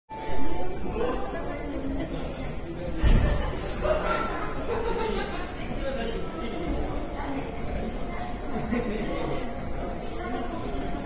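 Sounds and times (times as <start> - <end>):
murmur of crowd: 0.1 - 11.0
public-address announcement: 3.7 - 11.0.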